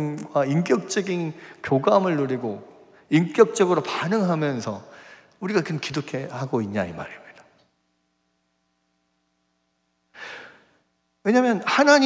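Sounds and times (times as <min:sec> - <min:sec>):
faint electrical hum: 0:00.0 - 0:12.0
man breathing into microphone: 0:04.9 - 0:05.4, 0:10.1 - 0:10.8.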